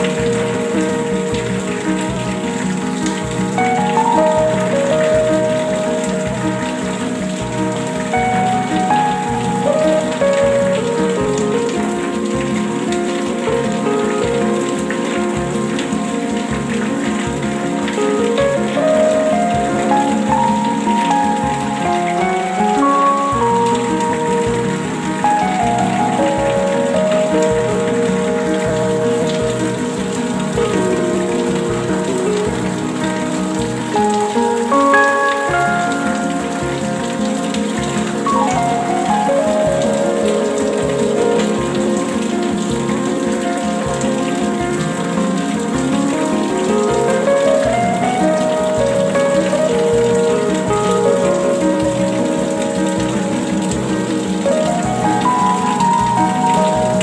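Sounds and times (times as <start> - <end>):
soft slow melody: 0.0 - 57.0
steady rain falling: 0.0 - 57.0.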